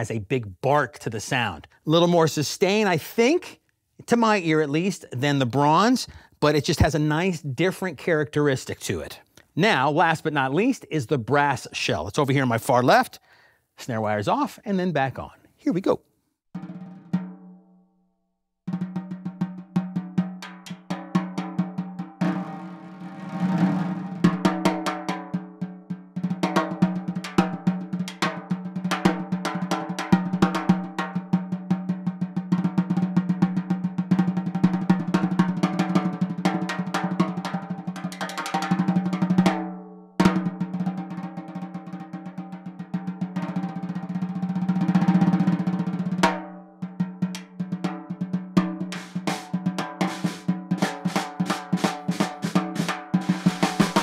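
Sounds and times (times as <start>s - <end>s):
snare drum played with sticks: 18.7s - 54.0s.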